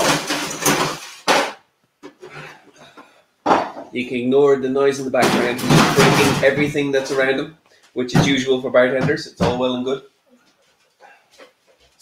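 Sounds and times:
glassware clattering: 3.4s - 3.9s.

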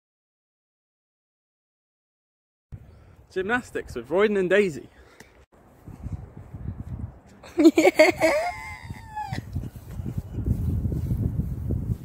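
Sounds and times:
wind buffeting microphone: 5.6s - 12.0s
high laugh: 7.4s - 9.6s.

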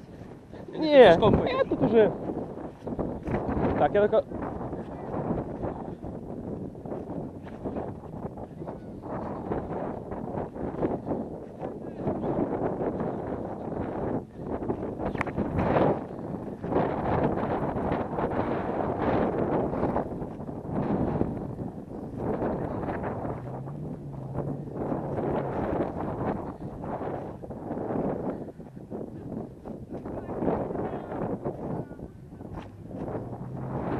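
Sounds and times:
wind buffeting microphone: 0.0s - 33.9s.

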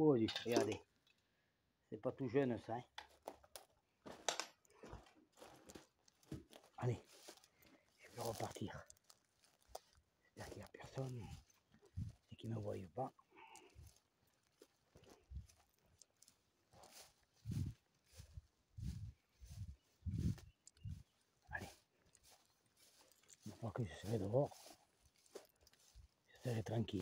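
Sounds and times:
footsteps swishing through tall grass: 6.5s - 27.0s.

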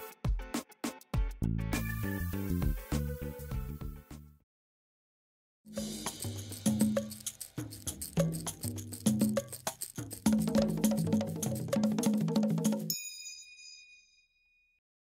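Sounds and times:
rhythmic jingle music: 5.7s - 14.0s.

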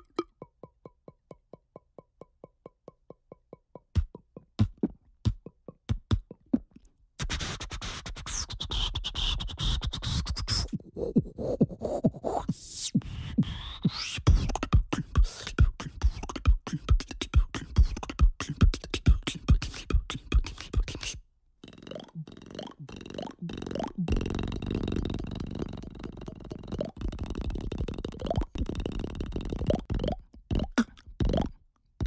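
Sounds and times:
beatbox music with record scratches: 3.5s - 31.6s.

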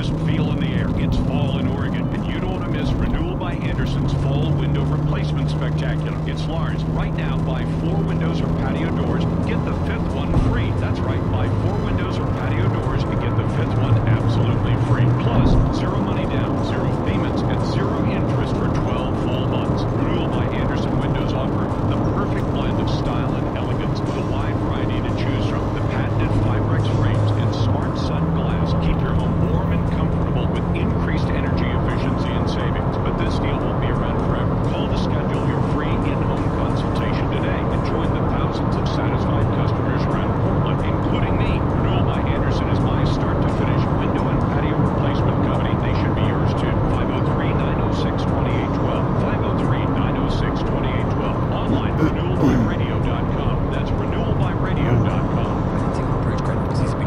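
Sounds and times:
indistinct voice from car radio: 0.0s - 57.0s
road and engine drone in car: 0.0s - 57.0s.

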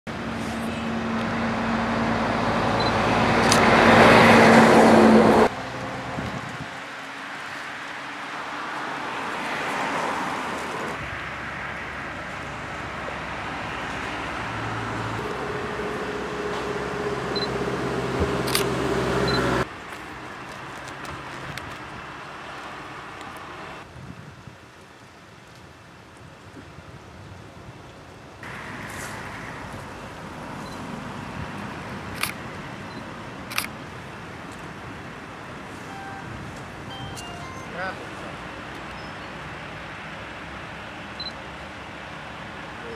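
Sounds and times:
wind noise: 2.4s - 7.0s, 23.7s - 37.2s
vehicle engine running: 15.2s - 19.7s
sharp clicks: 32.1s - 32.4s.

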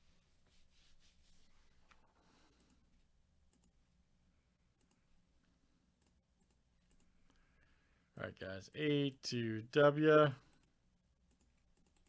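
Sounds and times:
computer mouse clicks: 3.5s - 3.8s, 4.8s - 5.0s, 6.0s - 7.4s, 11.3s - 12.0s.

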